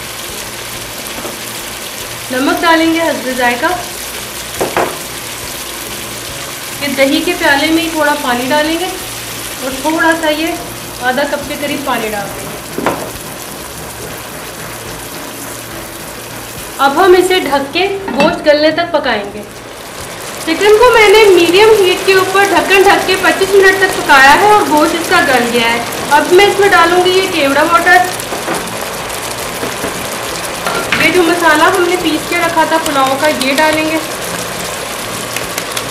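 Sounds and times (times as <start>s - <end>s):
chicken sizzling in oil: 0.0s - 18.2s, 19.4s - 35.9s.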